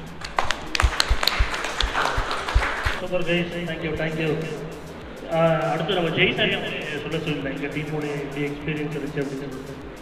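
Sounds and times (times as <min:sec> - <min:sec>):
group clapping: 0:00.0 - 0:03.0
person speaking: 0:01.1 - 0:09.7.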